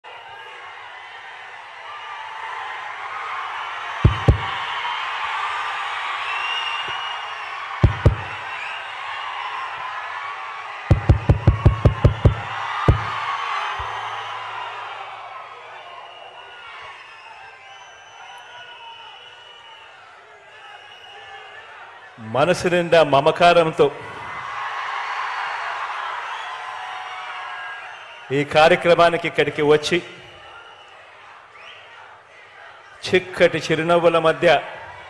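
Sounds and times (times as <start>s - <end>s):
crowd cheering and shouting: 0.0s - 35.0s
sharp thumps: 4.1s - 4.6s, 7.8s - 8.4s, 10.9s - 13.2s.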